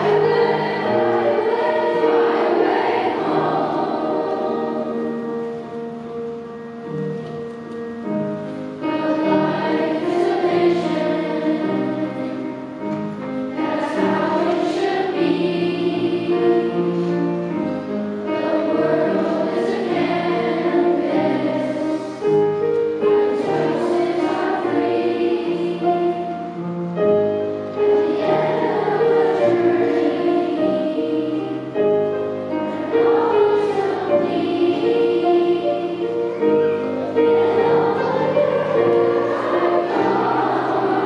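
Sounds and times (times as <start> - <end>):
children's choir singing: 0.0 - 41.0
piano accompaniment: 0.0 - 41.0.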